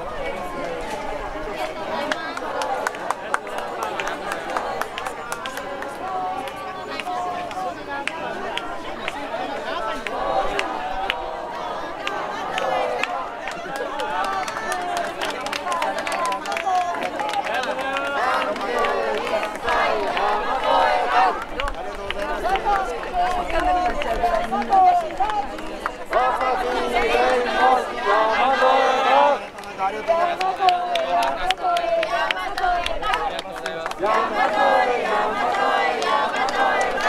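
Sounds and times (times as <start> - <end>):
crowd chatter: 0.0 - 37.0
people talking at once: 0.0 - 37.0.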